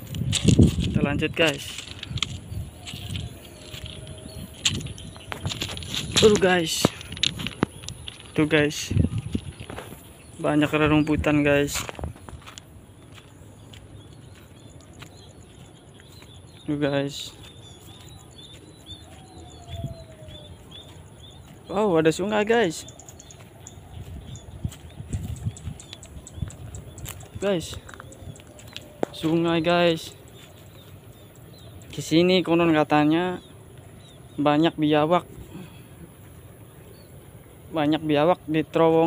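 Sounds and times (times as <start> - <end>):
footsteps on gravel: 0.0 - 34.2
outdoor background noise: 0.0 - 39.0
small birds chirping: 0.0 - 39.0.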